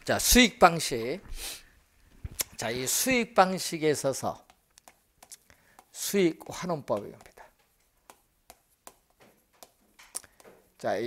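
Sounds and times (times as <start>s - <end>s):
chalk tapping and scraping: 4.2s - 11.0s.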